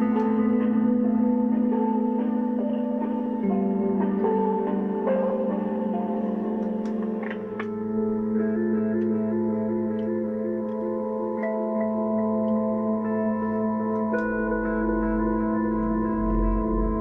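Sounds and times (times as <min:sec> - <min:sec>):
ambient synthesizer drone music: 0:00.0 - 0:17.0.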